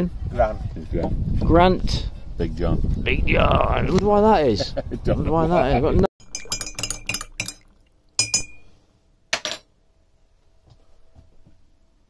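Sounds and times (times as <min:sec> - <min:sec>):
spoon clinking in ceramic bowl: 0:06.2 - 0:08.8.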